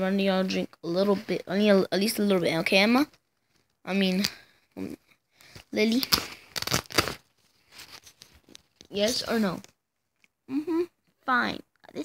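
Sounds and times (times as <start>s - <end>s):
rustling and scraping handling noise: 5.4s - 10.3s.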